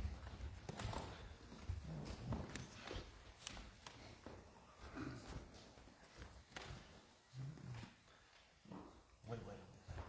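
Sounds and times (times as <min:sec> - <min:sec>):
footsteps and shuffling: 0:00.0 - 0:10.0.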